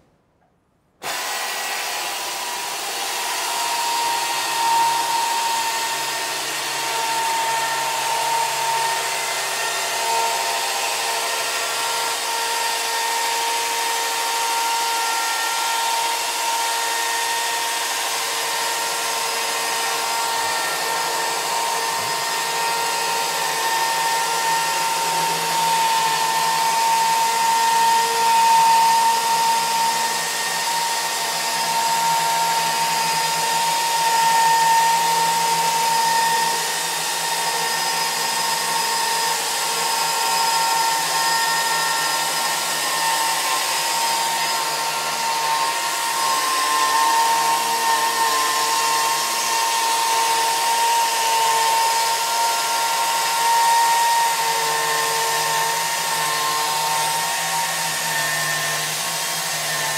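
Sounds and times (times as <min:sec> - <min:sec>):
electric chainsaw cutting log: 0:01.0 - 0:59.9.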